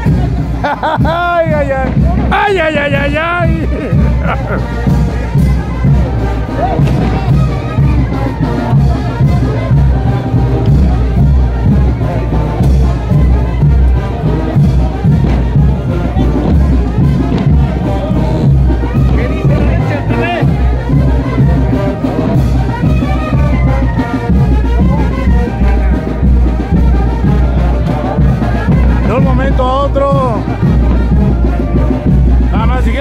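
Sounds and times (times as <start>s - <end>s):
brass band playing: 0.0s - 33.0s
crowd noise: 0.0s - 33.0s.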